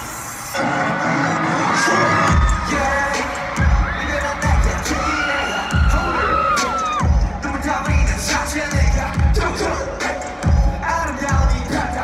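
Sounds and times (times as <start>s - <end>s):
crowd cheering and screaming: 0.0s - 12.0s
rap-rock song over loudspeakers: 0.0s - 12.0s.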